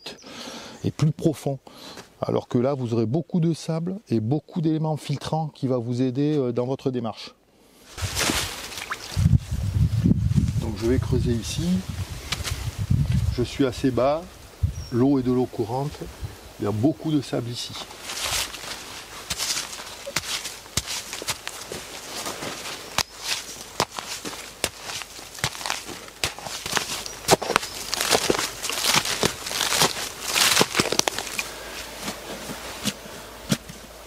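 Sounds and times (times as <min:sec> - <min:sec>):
digging in wet sandy soil: 0:17.7 - 0:33.9
clicks of sand and grit: 0:17.9 - 0:33.8.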